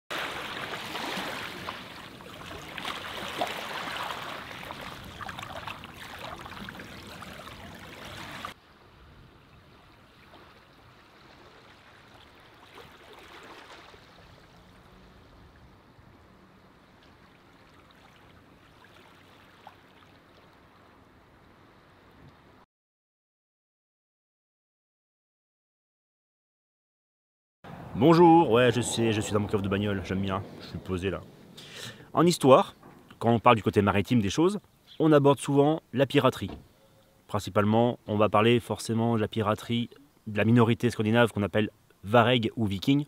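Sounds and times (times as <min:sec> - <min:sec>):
running splashing water: 0:00.1 - 0:08.6, 0:10.1 - 0:15.2.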